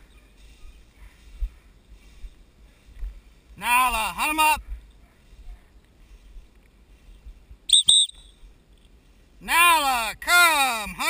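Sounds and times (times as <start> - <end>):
short high whistle pips: 7.7 - 8.4
loud voice calling out: 9.4 - 11.0.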